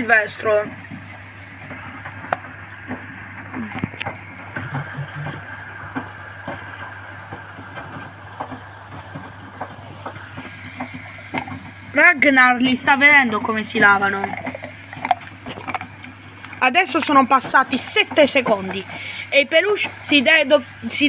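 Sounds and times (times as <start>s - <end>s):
washing machine drum turning: 0.0s - 21.0s
water sloshing: 7.4s - 21.0s.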